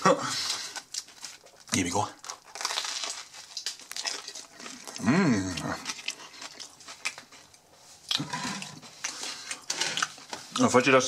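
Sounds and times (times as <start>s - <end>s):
chewing food with crunches: 0.4s - 10.9s
person humming: 5.0s - 5.8s.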